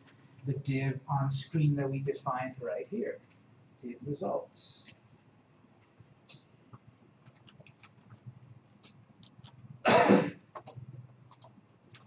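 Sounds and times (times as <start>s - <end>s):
keyboard and mouse clicks: 5.8s - 9.7s, 10.5s - 12.0s
person coughing: 9.9s - 10.4s.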